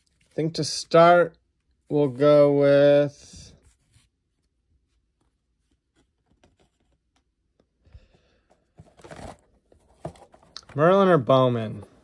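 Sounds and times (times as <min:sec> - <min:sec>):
soft rustle of cards: 0:00.0 - 0:12.0.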